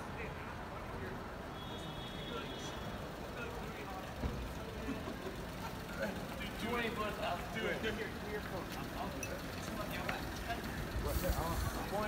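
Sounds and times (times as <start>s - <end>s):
chatter of passersby: 0.0s - 12.0s
traffic rumble: 0.0s - 12.0s.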